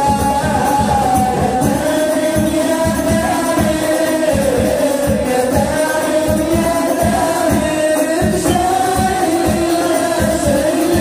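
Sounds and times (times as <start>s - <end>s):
steady drum beat: 0.0s - 11.0s.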